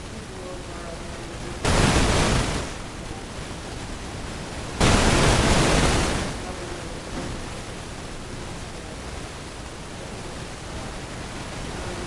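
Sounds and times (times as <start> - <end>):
low hiss: 0.0 - 12.0
burst of rushing noise: 1.6 - 3.1, 4.7 - 7.5.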